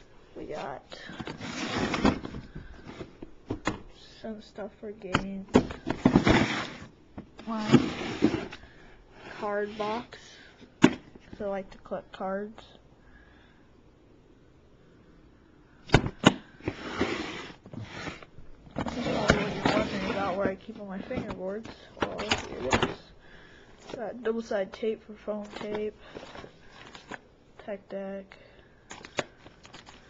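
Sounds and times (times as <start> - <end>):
low room noise: 0.0 - 30.0
rummaging in plastic bin: 0.5 - 3.8, 5.5 - 10.2, 16.6 - 23.1, 25.4 - 27.2
plastic bin thump: 10.8 - 11.1.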